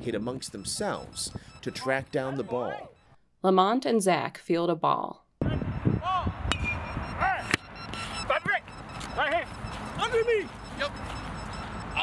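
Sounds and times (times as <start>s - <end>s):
players shouting calls: 0.7s - 3.1s, 5.4s - 12.0s.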